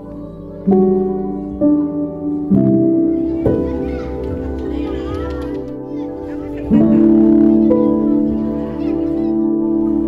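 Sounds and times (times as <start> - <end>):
background music sustained notes: 0.0 - 10.0
children chattering: 0.0 - 10.0.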